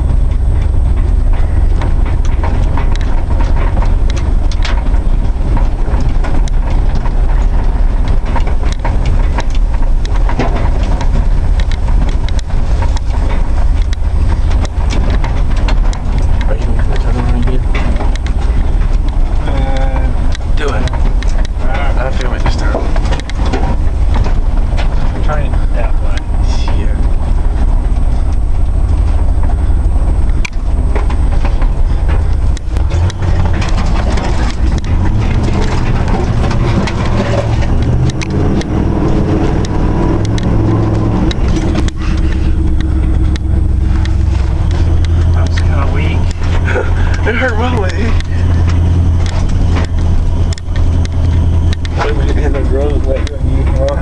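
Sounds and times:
knocks and rattles over bumps: 0.0 - 54.0
truck engine rumble: 0.0 - 54.0.

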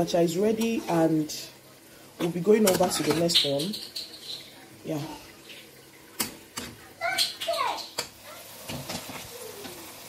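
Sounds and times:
spoon stirring in metal pot: 2.2 - 4.6.

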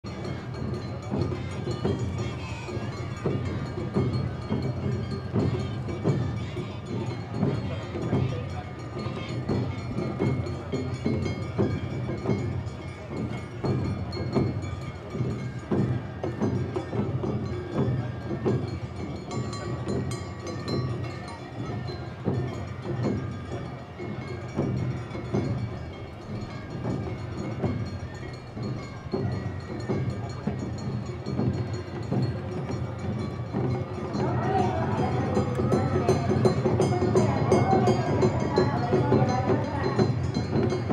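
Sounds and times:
festival drums and hand gongs: 0.0 - 40.9.

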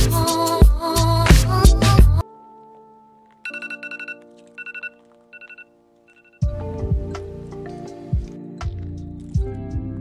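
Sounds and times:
faint held chord music: 2.2 - 10.0
phone alarm high beeps: 3.5 - 6.4.

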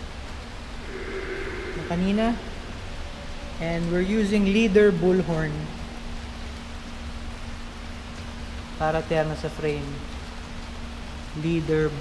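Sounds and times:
faint constant hum: 0.0 - 12.0
steady hiss: 0.0 - 12.0
low rumble: 0.4 - 4.8.

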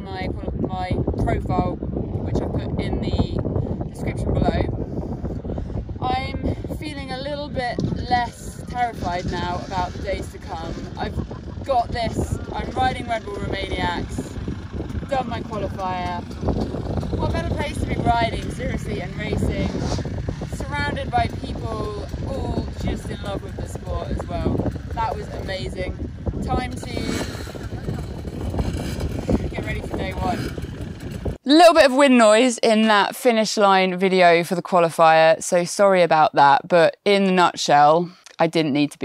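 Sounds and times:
woman talking: 0.0 - 4.7, 6.0 - 14.4, 15.0 - 16.3, 17.2 - 27.4, 29.3 - 30.5, 31.4 - 39.0
strong wind buffeting microphone: 0.0 - 31.6.

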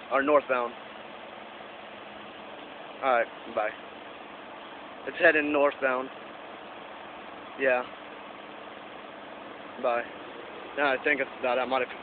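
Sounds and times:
vehicle engines idling: 0.0 - 12.0.

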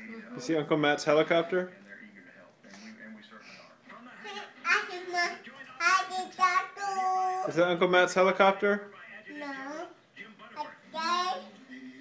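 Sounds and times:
child's sing-song voice: 4.7 - 7.5, 9.3 - 10.0, 10.6 - 11.6.

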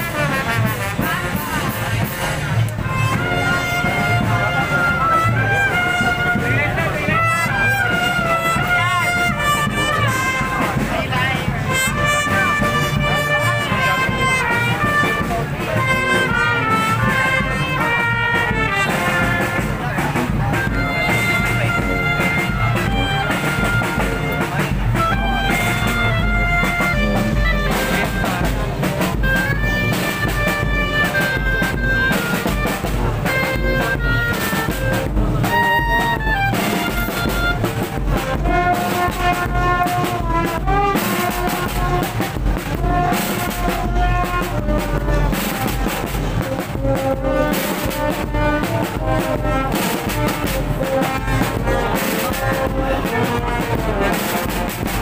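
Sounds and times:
marching brass band playing: 0.0 - 55.0
steady drum beat: 0.0 - 55.0.

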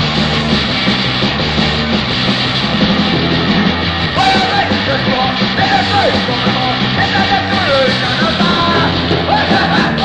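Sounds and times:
punk band playing: 0.0 - 10.0
yelled vocals: 2.8 - 10.0.

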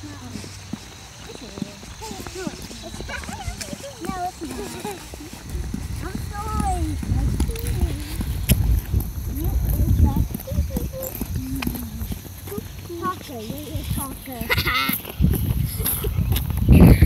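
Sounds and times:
footsteps on pavement: 0.0 - 17.0
young children chattering: 0.0 - 17.0.

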